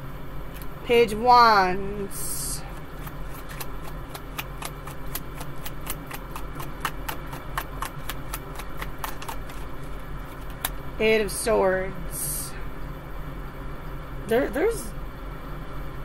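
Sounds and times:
cards being shuffled: 2.7s - 10.8s.

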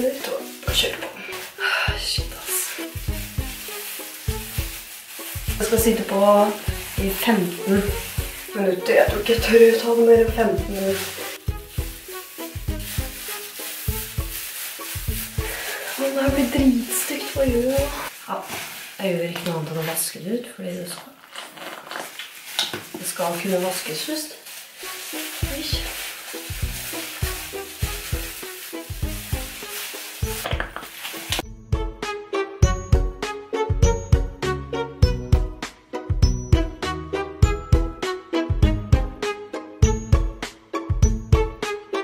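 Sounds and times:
background music with steady beat: 0.0s - 18.1s, 24.8s - 42.0s
gloved hands squishing hair: 0.0s - 20.1s, 21.2s - 31.4s.

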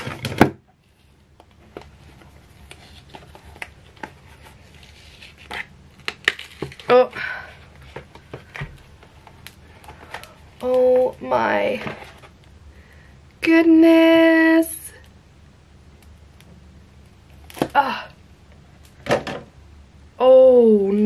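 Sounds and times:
silicone mould peeling and crinkling: 0.0s - 12.7s, 16.0s - 19.0s.

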